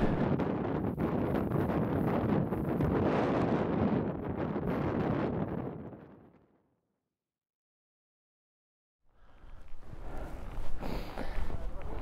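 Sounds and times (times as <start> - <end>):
strong wind on microphone: 0.0 - 6.4.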